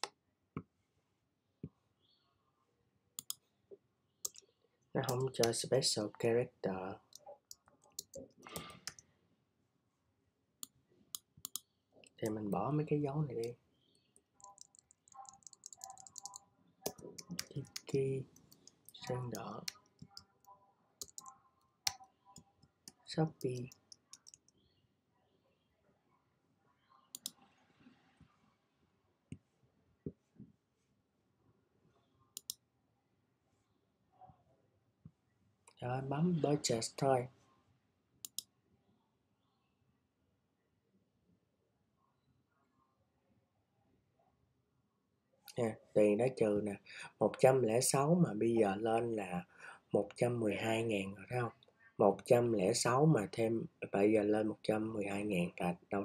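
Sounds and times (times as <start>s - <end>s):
mouse clicks: 3.2s - 3.4s, 10.6s - 12.2s, 21.0s - 24.6s, 27.1s - 27.4s, 32.4s - 32.6s, 38.2s - 38.5s
keyboard typing: 14.4s - 20.3s, 21.0s - 24.6s.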